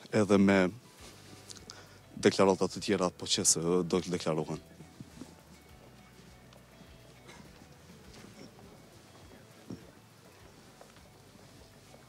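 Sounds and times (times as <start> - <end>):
footsteps on stone paving: 4.0 - 12.0.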